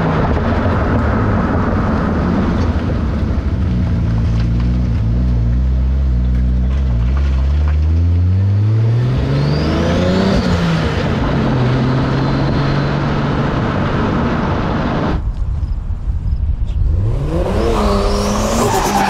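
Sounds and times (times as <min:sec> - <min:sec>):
car engine and exhaust: 0:00.0 - 0:19.0
road and tyre noise: 0:00.0 - 0:19.0.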